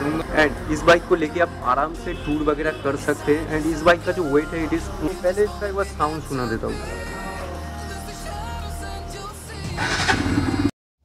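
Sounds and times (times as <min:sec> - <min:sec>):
background music: 0:00.0 - 0:10.7
motorcycle engine revving: 0:09.7 - 0:10.7.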